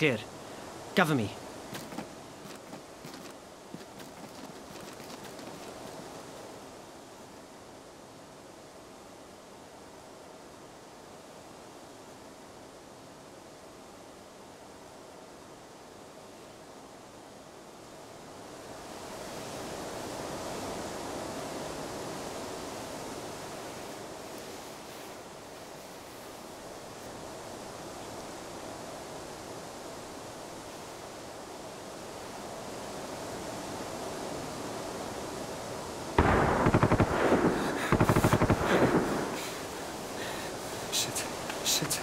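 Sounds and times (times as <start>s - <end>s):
rushing outdoor ambience: 0.0s - 42.0s
automatic gunfire: 36.2s - 39.7s.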